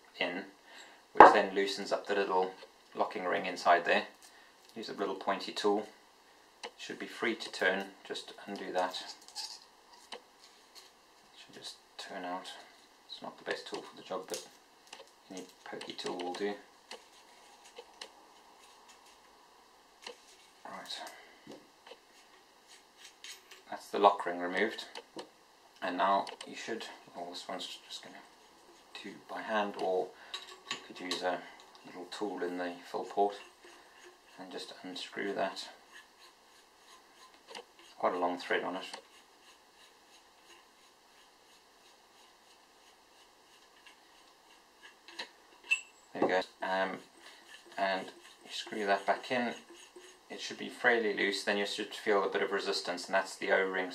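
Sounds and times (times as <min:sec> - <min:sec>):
metal tool clicking and scraping: 0:23.0 - 0:23.7, 0:29.7 - 0:34.7, 0:38.8 - 0:50.8.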